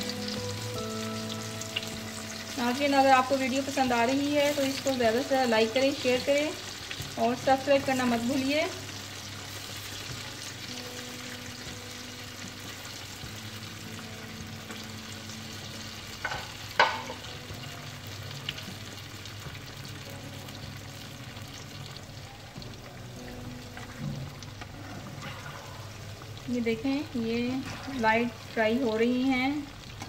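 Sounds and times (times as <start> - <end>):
dumplings sizzling in oil: 0.0 - 30.0.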